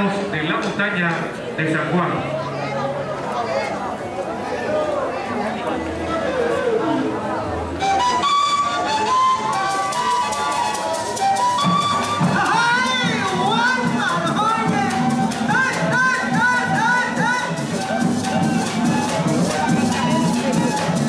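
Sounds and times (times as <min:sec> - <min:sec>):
crowd chatter: 0:00.0 - 0:21.0
flute melody: 0:06.0 - 0:21.0
shaken and struck percussion: 0:07.8 - 0:21.0.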